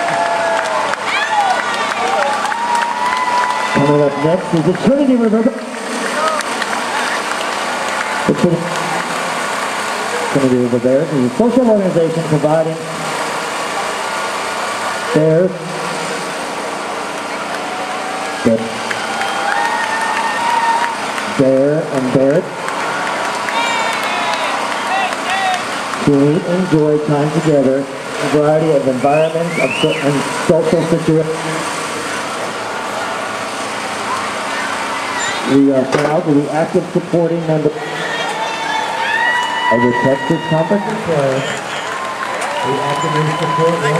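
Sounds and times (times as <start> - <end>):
street background hum and hiss: 0.0 - 43.9.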